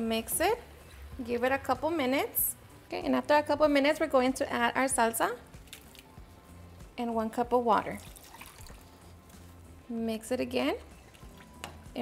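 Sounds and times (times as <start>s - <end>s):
quiet background music: 0.0s - 12.0s
water trickling and splashing: 5.6s - 6.2s, 7.8s - 9.1s, 11.0s - 11.7s.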